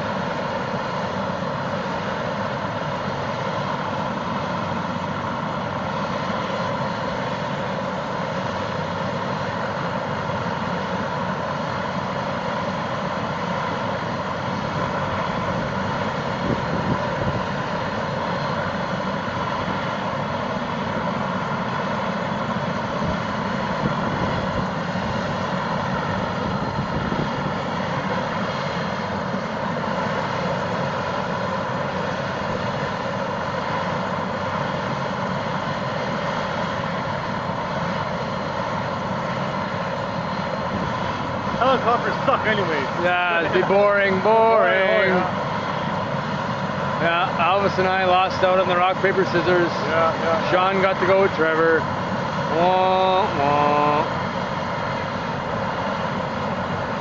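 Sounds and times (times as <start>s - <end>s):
helicopter engine whine: 0.0s - 57.0s
helicopter rotor noise: 0.0s - 57.0s.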